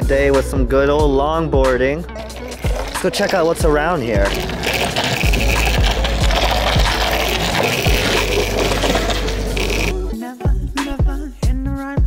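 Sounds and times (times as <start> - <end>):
background music: 0.0 - 12.0
voice in music: 0.0 - 12.0
longboard wheels rolling on asphalt: 2.1 - 10.0.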